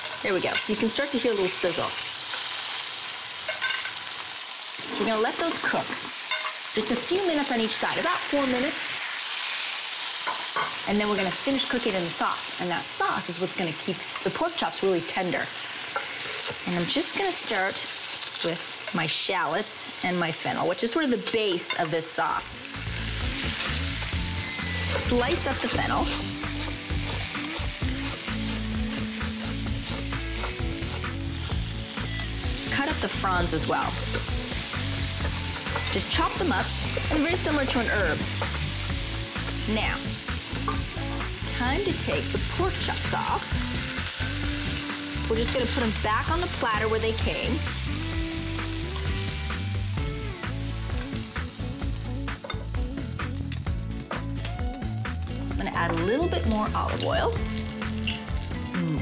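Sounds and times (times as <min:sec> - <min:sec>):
meat sizzling in a hot pan: 0:00.0 - 0:59.0.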